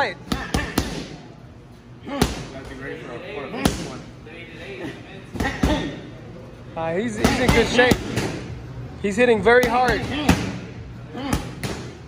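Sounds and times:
boxing gloves punching mitts: 0:00.2 - 0:01.3, 0:05.4 - 0:06.0, 0:07.1 - 0:08.6, 0:09.5 - 0:12.0.

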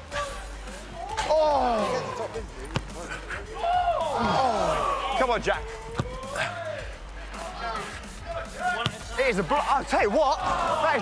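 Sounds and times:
football kick thud: 0:02.7 - 0:03.0, 0:05.9 - 0:06.2, 0:08.8 - 0:09.2.

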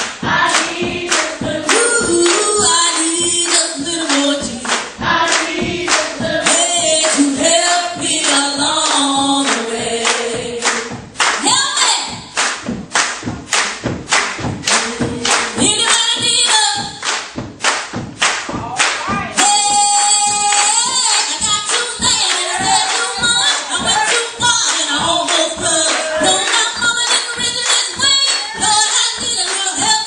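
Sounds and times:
gospel singers on microphones: 0:00.0 - 0:11.2, 0:13.6 - 0:16.9, 0:19.1 - 0:30.0
congregation clapping on the beat: 0:00.0 - 0:30.0.

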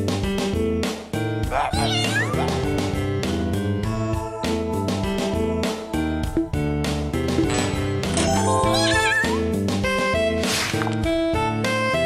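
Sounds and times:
upbeat electronic game music: 0:03.9 - 0:10.0.

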